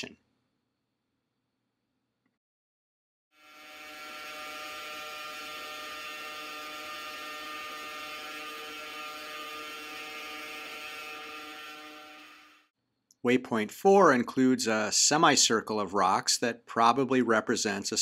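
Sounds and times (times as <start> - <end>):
rotors whirring hum: 3.4 - 12.7.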